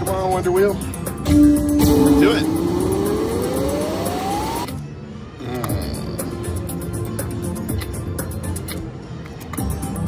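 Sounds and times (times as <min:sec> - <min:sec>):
slot machine rising tone: 0:01.3 - 0:04.7
slot machine reels spinning: 0:01.8 - 0:04.7.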